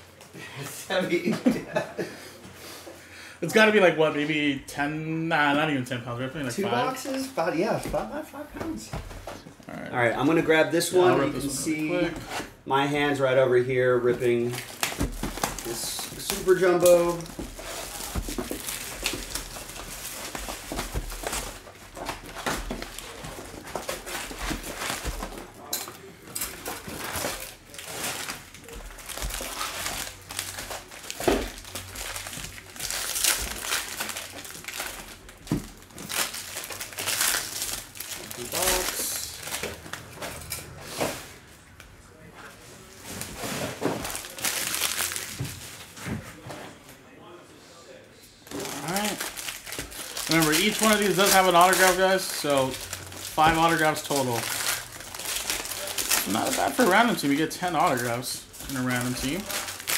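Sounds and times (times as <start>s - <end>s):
plastic wrap crinkling: 14.2s - 40.1s, 42.9s - 46.0s, 48.4s - 59.9s.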